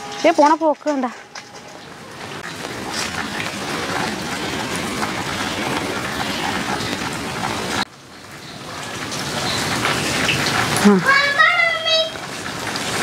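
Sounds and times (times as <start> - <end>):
steady rain falling: 0.0 - 13.0.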